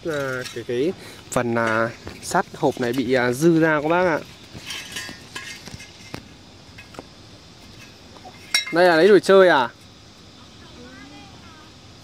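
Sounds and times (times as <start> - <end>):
steel tubing knocking and clinking: 1.5 - 7.0, 7.7 - 9.0.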